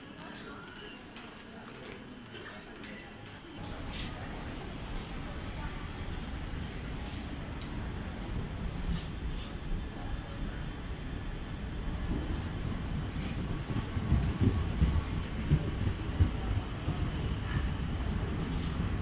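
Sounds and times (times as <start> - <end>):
train coaches rolling past: 3.6 - 19.0
train wheels knocking: 11.8 - 18.6.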